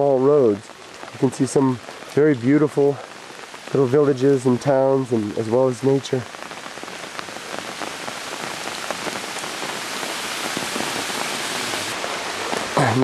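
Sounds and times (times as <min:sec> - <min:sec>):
water hissing: 0:06.8 - 0:13.0.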